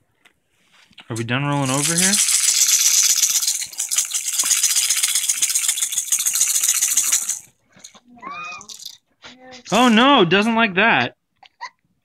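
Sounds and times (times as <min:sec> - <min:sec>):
baby's toy rattle shaken: 0:01.1 - 0:10.2.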